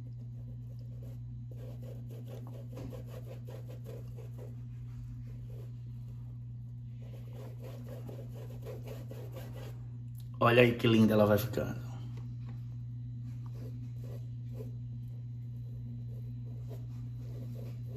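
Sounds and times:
brush scrubbing paint on canvas: 0:00.0 - 0:10.0, 0:13.0 - 0:17.9
steady low hum: 0:00.0 - 0:17.9.

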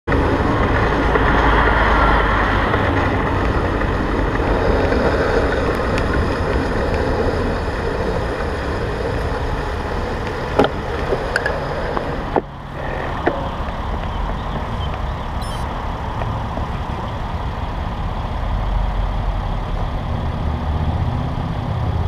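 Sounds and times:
road and traffic noise: 0:00.0 - 0:22.0
wind rumble on microphone: 0:00.1 - 0:22.0.

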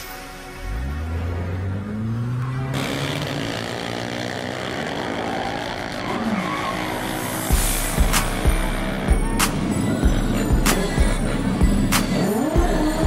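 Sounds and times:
drag racing cars roaring: 0:00.2 - 0:13.0
music with kick drum beat: 0:07.5 - 0:13.0.

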